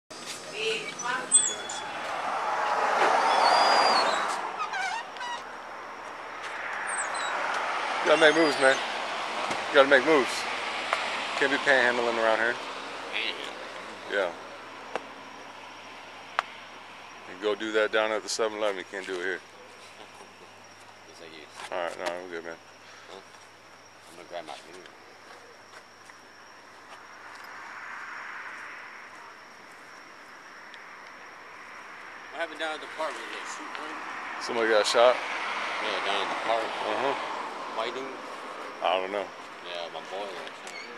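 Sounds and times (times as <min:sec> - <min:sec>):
vehicle approaching: 0:00.2 - 0:21.5, 0:26.3 - 0:40.7
car passing: 0:00.3 - 0:21.6, 0:26.3 - 0:40.8.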